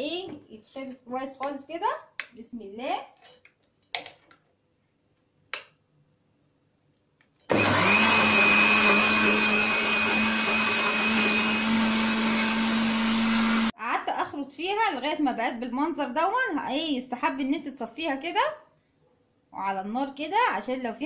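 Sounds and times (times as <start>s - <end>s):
electric blender whining: 7.5s - 13.7s.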